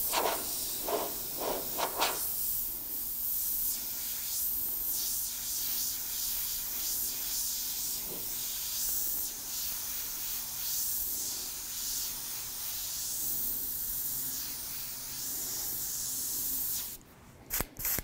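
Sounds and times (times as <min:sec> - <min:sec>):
airbrush spraying paint: 0:00.0 - 0:18.0.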